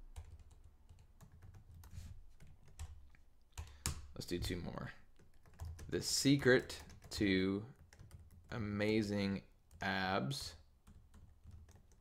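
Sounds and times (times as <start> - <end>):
keyboard typing: 0.1 - 4.1, 5.1 - 8.7, 10.8 - 12.0.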